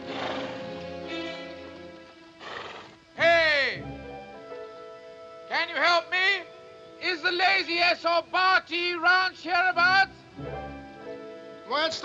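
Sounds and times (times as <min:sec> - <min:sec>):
horse whinnying: 0:00.0 - 0:01.6, 0:02.4 - 0:03.0
background music: 0:00.0 - 0:12.0.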